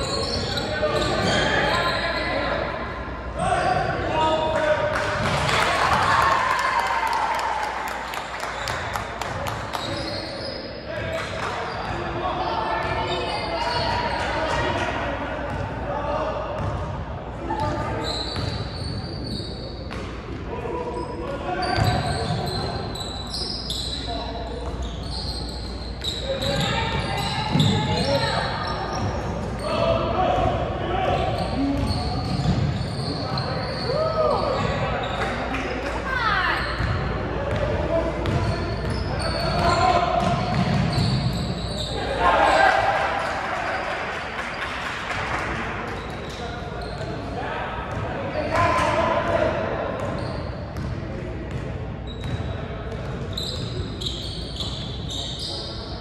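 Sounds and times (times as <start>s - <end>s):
sneakers squeaking: 0.0s - 4.3s, 8.1s - 14.8s, 16.6s - 16.9s, 17.5s - 30.0s, 31.0s - 44.8s, 45.4s - 56.0s
basketball bouncing on court: 27.5s - 28.1s, 31.7s - 33.5s, 36.8s - 41.5s, 50.0s - 53.7s.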